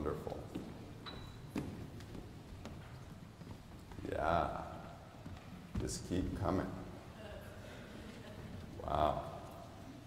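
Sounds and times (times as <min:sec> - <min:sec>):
children's footsteps and shuffling: 0:00.0 - 0:10.0.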